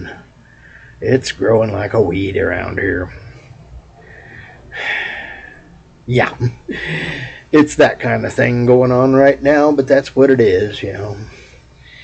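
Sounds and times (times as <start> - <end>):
man breathing: 0.2 - 1.0, 3.1 - 5.8, 6.7 - 7.6, 11.2 - 12.0.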